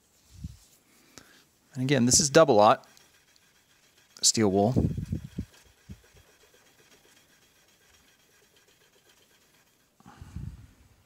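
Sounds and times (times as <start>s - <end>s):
steel wool rubbing on frets: 1.8s - 10.0s.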